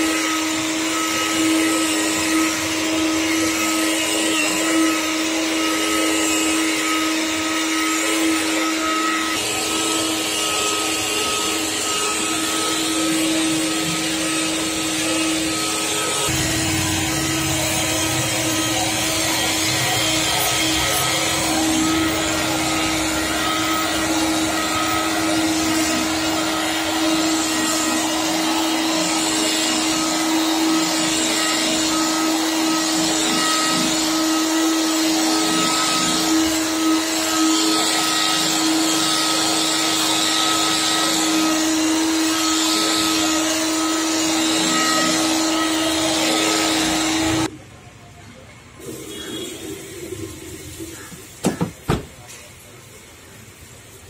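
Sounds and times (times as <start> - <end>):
rotary car polisher running: 0.0 - 47.5.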